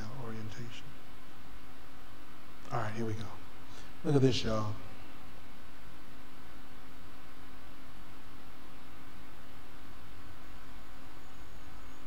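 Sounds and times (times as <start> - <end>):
background hiss: 0.0 - 12.0
faint hum: 0.0 - 12.0.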